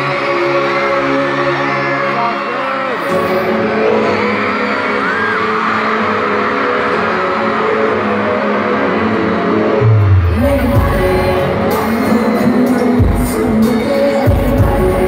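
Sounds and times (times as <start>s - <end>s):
live pop concert music: 0.0s - 15.0s
heavy deep bass: 9.8s - 12.0s.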